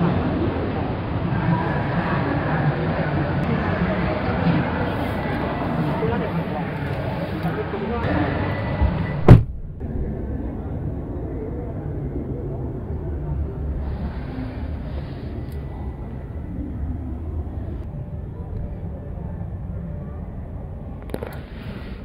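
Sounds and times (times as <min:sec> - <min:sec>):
muffled voices: 0:00.0 - 0:22.0
car door thud: 0:09.2 - 0:09.7.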